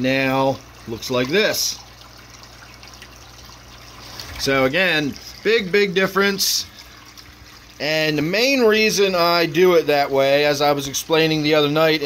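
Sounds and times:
aquarium water trickling: 0.0 - 12.0.

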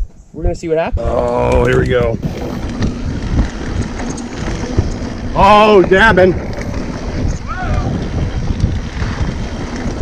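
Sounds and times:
wind on microphone: 0.0 - 10.0
bike tyres rolling on dirt: 0.1 - 10.0
bike knocking over bumps: 1.2 - 10.0.

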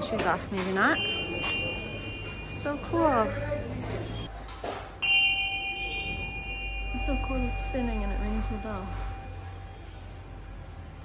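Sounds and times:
prayer wheel bell ringing: 0.9 - 4.3, 5.0 - 10.4.

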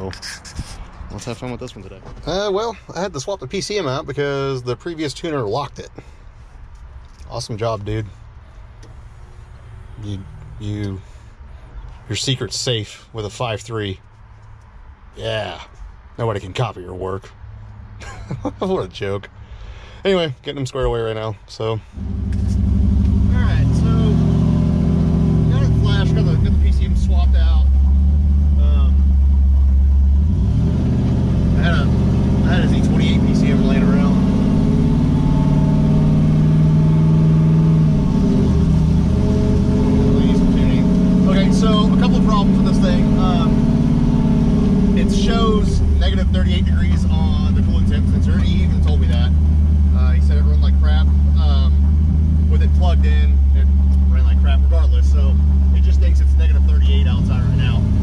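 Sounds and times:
truck engine running: 22.0 - 58.0.

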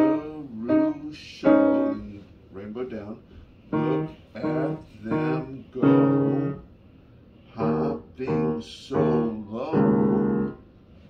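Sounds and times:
piano playing simple tune: 0.0 - 2.2, 3.7 - 6.7, 7.5 - 10.7.

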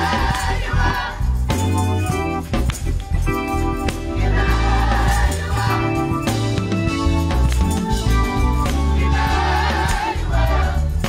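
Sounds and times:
women singing gospel: 0.0 - 1.4, 4.2 - 6.4, 9.0 - 11.0
band with heavy bass: 0.0 - 11.0.

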